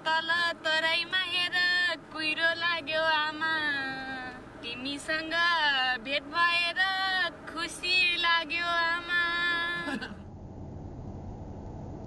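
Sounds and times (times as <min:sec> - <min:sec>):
low even rumble: 0:10.1 - 0:12.0.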